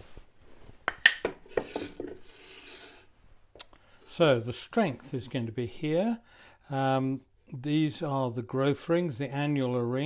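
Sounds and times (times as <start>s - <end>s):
wooden boards knocking: 0.9s - 2.2s
soft rubbing scrape: 1.5s - 3.4s.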